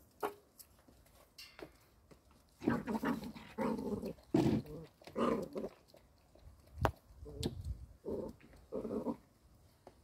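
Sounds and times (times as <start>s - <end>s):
puppy growling in play: 2.6s - 6.0s, 8.0s - 9.3s.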